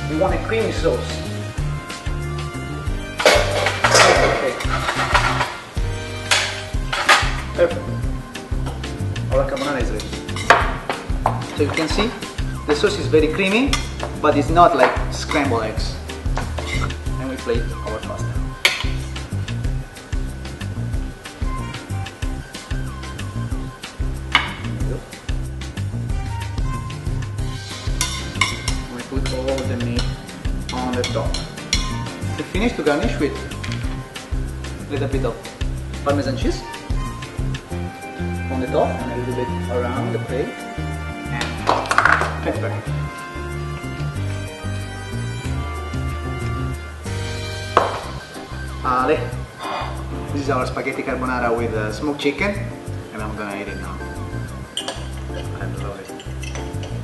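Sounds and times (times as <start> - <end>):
background music with bass line: 0.0 - 57.0
frying pan clanking and scraping: 3.1 - 7.6, 9.5 - 12.4, 16.2 - 17.6, 18.5 - 19.2, 24.3 - 24.8, 27.6 - 34.2, 56.1 - 57.0
metal fork scraping metal pan: 3.2 - 5.6, 27.9 - 32.1.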